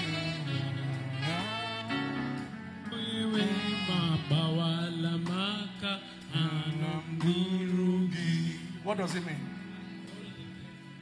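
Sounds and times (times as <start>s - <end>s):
man singing into a microphone: 0.0s - 8.8s.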